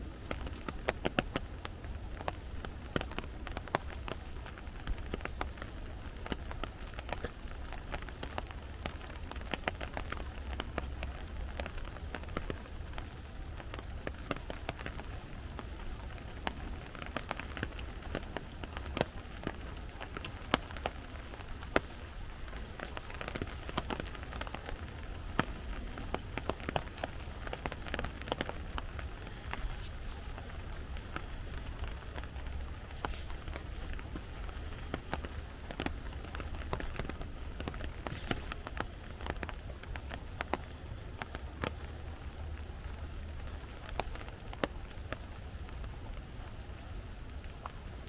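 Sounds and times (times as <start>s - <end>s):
rain pattering on foliage: 0.0s - 48.0s.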